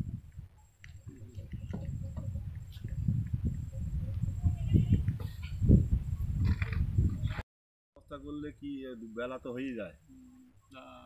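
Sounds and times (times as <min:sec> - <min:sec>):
wind buffeting microphone: 0:00.0 - 0:07.4
faint voices: 0:03.6 - 0:05.5.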